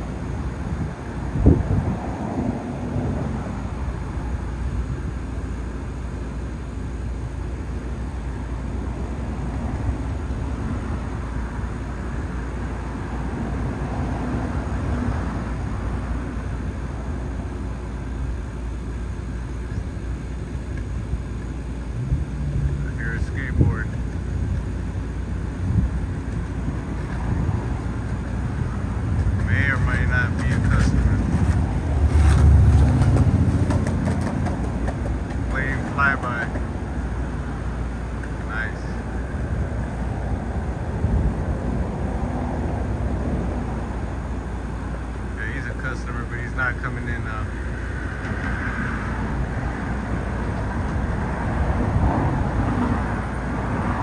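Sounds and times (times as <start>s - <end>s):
distant traffic rumble: 0.0s - 54.0s.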